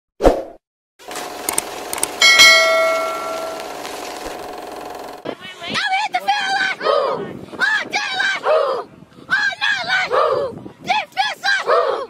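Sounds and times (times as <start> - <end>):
ringing metallic strike: 2.2 - 3.7
voices: 5.3 - 12.0.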